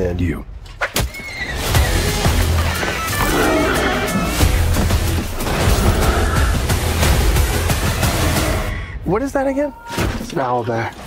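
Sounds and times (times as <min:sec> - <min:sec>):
dramatic trailer music: 0:01.4 - 0:10.3.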